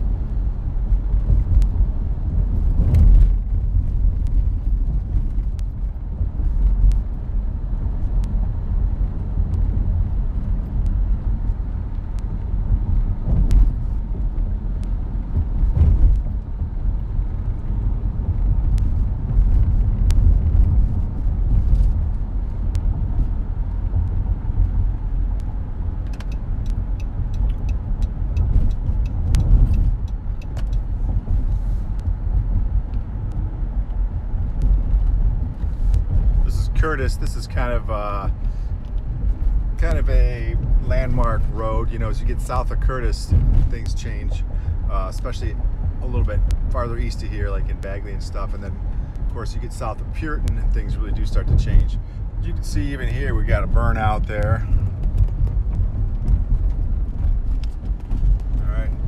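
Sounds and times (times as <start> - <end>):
road and engine rumble: 0.0 - 59.0
sharp clicks and knocks: 17.6 - 36.8.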